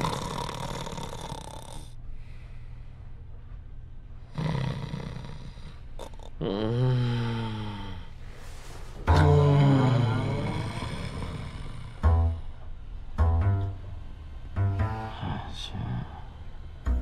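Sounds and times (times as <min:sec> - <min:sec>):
man snoring: 0:00.0 - 0:02.0, 0:04.3 - 0:08.1, 0:09.1 - 0:12.0.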